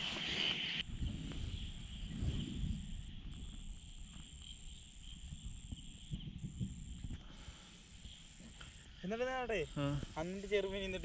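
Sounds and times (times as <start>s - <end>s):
high insect trill: 0.2s - 11.0s.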